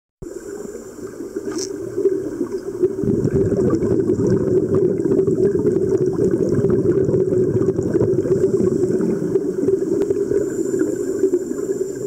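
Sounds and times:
underwater regulator bubbles: 0.2s - 12.0s.

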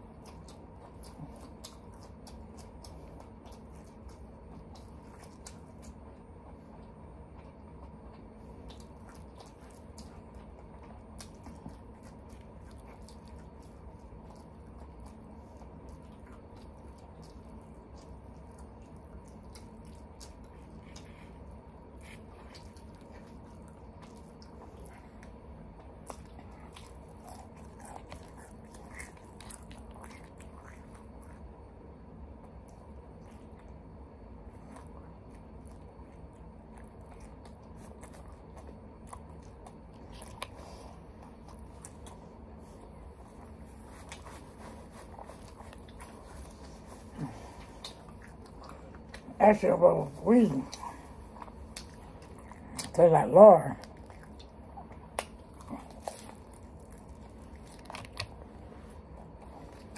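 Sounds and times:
faint chewing: 0.0s - 59.9s
steady low hum: 0.0s - 59.9s.

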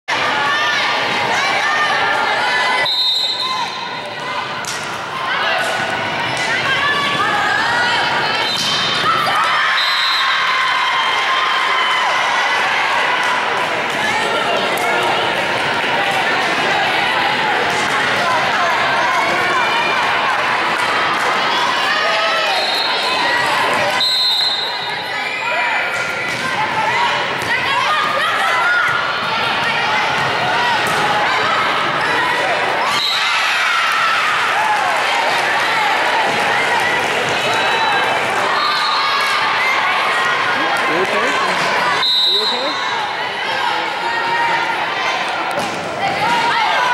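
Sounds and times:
voices of players and spectators: 0.0s - 46.9s
people shouting in echoing gym: 0.1s - 46.9s
referee's whistle blast: 2.8s - 3.8s, 24.0s - 24.9s, 42.0s - 42.8s
high steady whistle tone: 9.8s - 10.4s, 24.0s - 25.5s, 42.0s - 42.8s.

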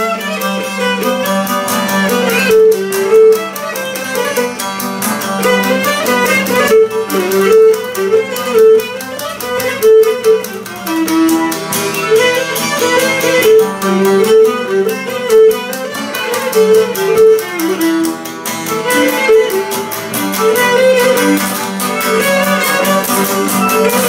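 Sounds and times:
bowed lyra melody: 0.0s - 24.0s
plucked lute strumming: 0.0s - 24.0s.

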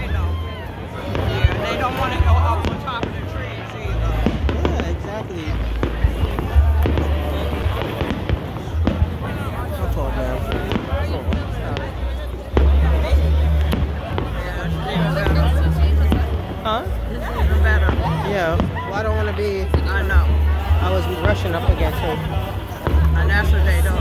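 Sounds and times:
crowd voices: 0.0s - 24.0s
music: 0.0s - 24.0s
distant fireworks bangs: 1.1s - 9.7s, 10.4s - 16.7s.

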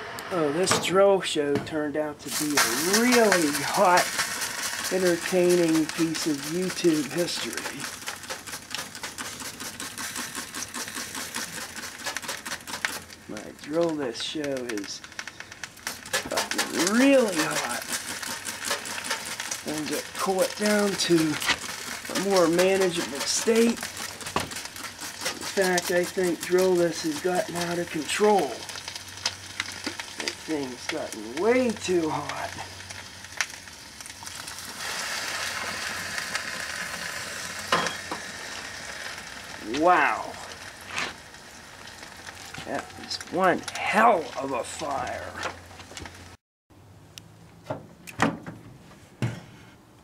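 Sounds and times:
plastic crackling and popping: 2.3s - 46.4s.

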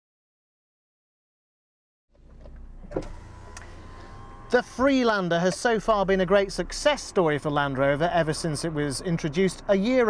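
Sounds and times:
low steady hum: 2.2s - 9.2s.

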